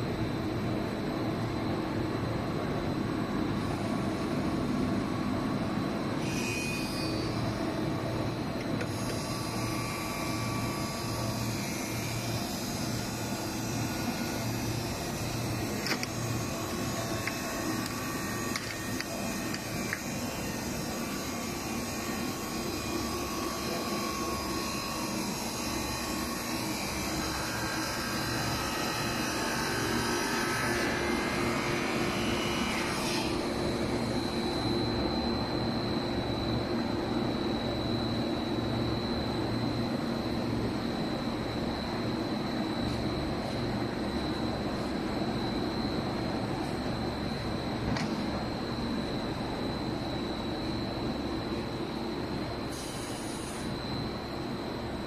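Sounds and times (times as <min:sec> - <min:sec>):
machine humming and whirring: 0:00.0 - 0:55.0.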